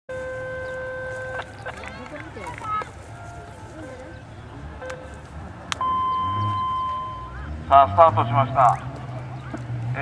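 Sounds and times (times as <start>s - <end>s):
steady horn blast: 0.1s - 1.6s
faint crowd chatter: 0.6s - 10.0s.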